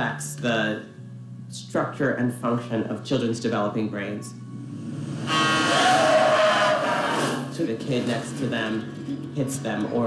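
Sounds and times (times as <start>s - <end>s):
car horns honking: 5.2s - 7.5s
tyres screeching: 5.2s - 7.5s.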